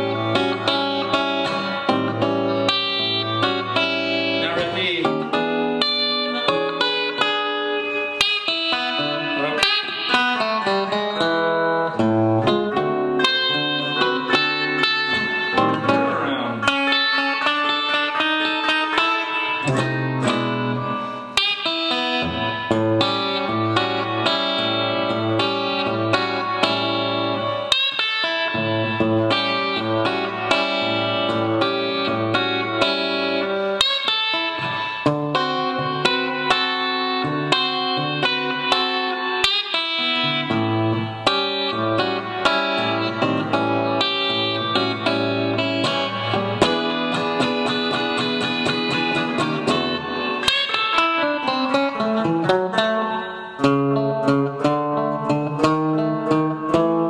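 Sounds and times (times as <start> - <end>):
solo blues electric guitar: 0.0 - 57.0.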